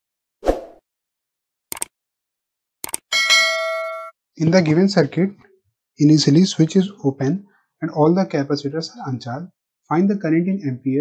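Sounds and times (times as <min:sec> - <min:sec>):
bright bell ding: 0:03.1 - 0:04.2.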